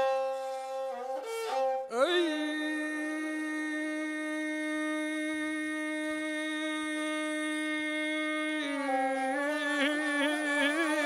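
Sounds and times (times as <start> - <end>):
bowed spike fiddle: 0.0 - 4.0, 8.5 - 11.0.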